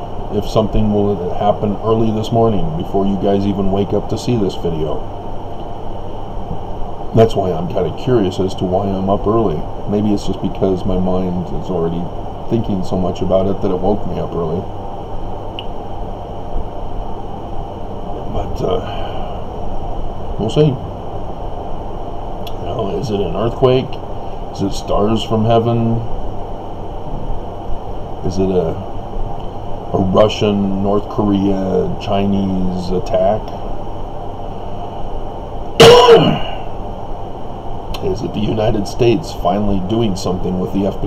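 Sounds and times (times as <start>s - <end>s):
faint high whine: 0.0s - 41.0s
low rumbling background noise: 0.0s - 41.0s
man coughing: 35.8s - 36.7s.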